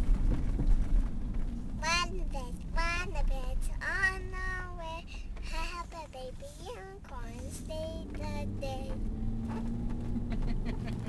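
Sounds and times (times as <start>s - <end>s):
car road noise rumble: 0.0s - 11.0s
girl singing: 1.8s - 9.1s.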